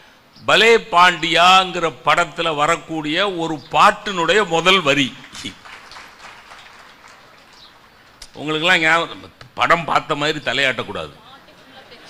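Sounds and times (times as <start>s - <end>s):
faint audience applause: 5.0s - 8.4s.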